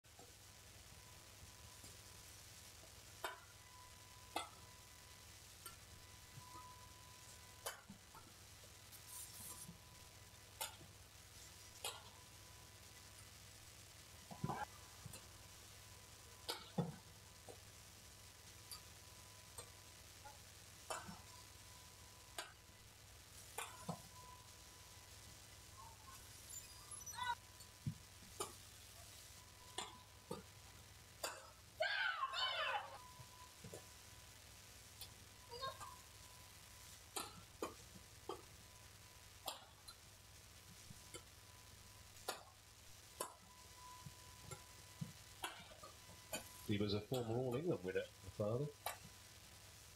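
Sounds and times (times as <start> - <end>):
rackets hitting shuttlecock: 7.6 - 8.0, 20.9 - 21.2, 23.6 - 24.0, 29.8 - 30.4, 31.2 - 31.6, 37.2 - 38.4, 42.3 - 42.5, 45.4 - 46.5.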